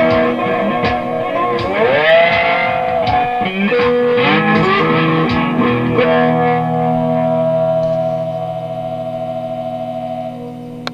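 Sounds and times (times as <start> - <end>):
guitar chord ringing out: 0.0 - 10.9.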